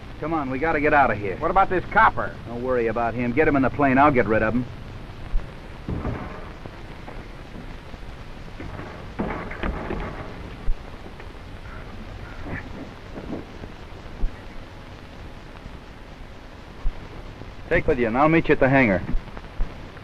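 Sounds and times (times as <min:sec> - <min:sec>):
film soundtrack hiss and crackle: 0:00.0 - 0:20.0
knocks: 0:05.8 - 0:07.7.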